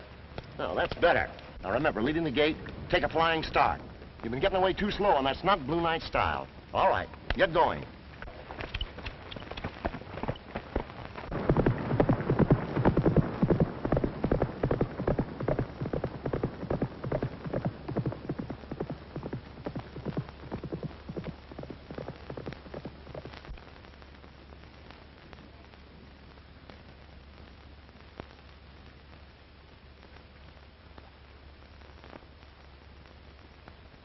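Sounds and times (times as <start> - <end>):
horse hoofbeats galloping: 8.2 - 23.7.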